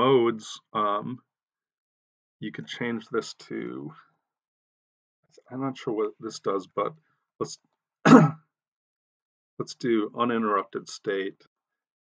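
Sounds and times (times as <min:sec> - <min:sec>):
man speaking: 0:00.0 - 0:01.2, 0:02.4 - 0:04.0, 0:05.4 - 0:08.3, 0:09.6 - 0:11.4
man coughing: 0:08.1 - 0:08.4.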